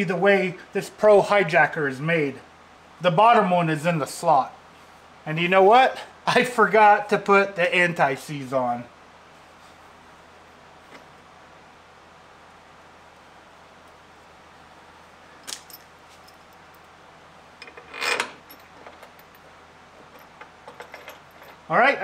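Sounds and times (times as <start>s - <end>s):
low room noise: 0.0s - 22.0s
metallic clatter: 17.6s - 21.7s.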